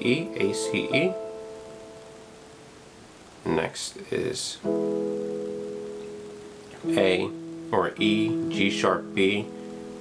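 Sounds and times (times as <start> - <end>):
keyboard piano chord: 0.0 - 2.8, 4.6 - 10.0.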